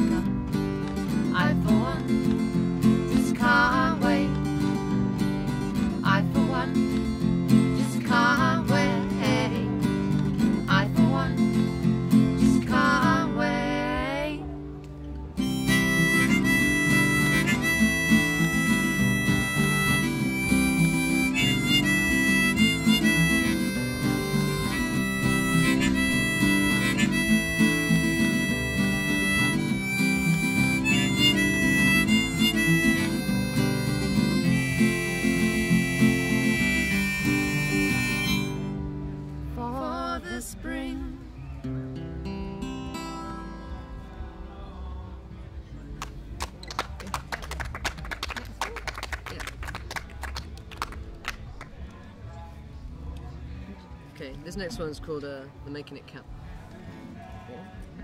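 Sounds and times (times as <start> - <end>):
strummed acoustic guitar: 0.0 - 45.3
person singing: 1.2 - 2.4, 3.1 - 4.7, 6.0 - 9.8, 10.6 - 14.6, 15.5 - 38.6
harmonica solo: 15.4 - 39.1.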